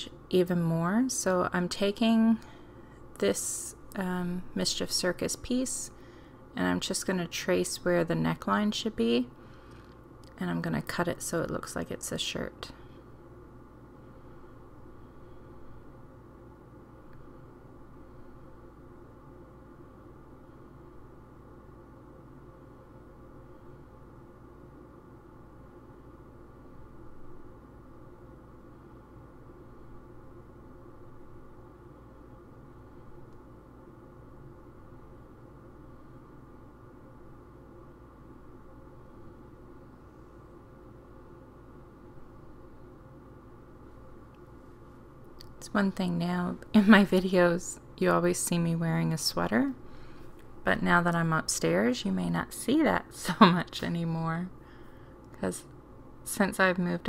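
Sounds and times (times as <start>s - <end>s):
faint low hum: 0.0s - 57.0s.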